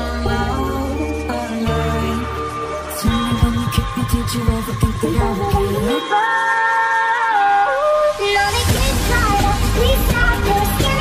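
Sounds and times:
high-pitched sped-up singing voice: 0:03.0 - 0:11.0.

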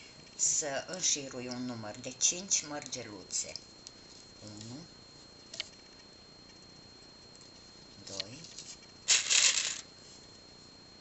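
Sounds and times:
beads rattling in plastic tray: 0:09.1 - 0:09.8.

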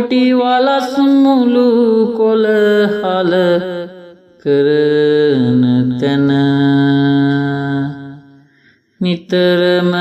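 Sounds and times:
person chanting a folk verse: 0:00.0 - 0:10.0.

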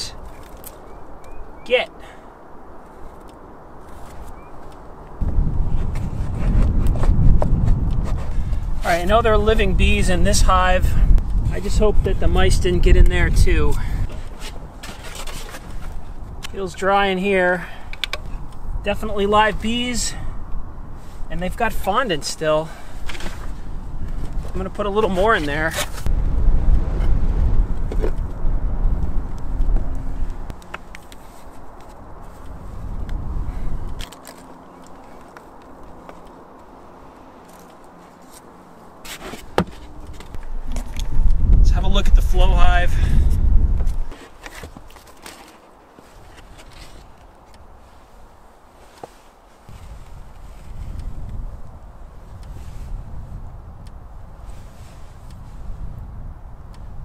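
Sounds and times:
wind buffeting microphone: 0:02.4 - 0:36.0, 0:39.5 - 0:45.0, 0:49.7 - 0:57.0.

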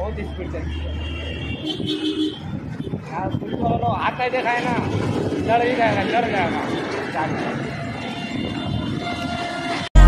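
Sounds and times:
road traffic: 0:00.0 - 0:10.0
man talking: 0:03.1 - 0:07.6.

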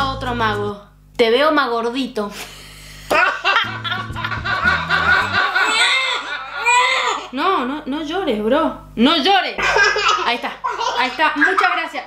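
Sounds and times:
woman laughing loudly: 0:03.1 - 0:07.2
low sustained music notes: 0:03.6 - 0:05.6.

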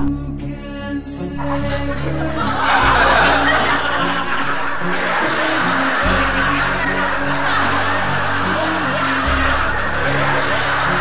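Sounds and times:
background music: 0:00.0 - 0:11.0
laughter: 0:01.4 - 0:11.0.

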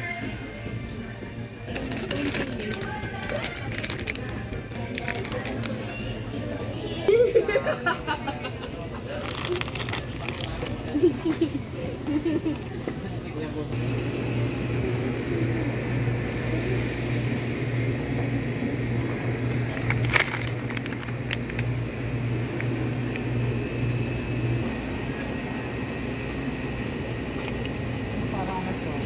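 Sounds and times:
murmur of shoppers' voices: 0:00.0 - 0:29.0
steady low hum: 0:07.7 - 0:29.0.

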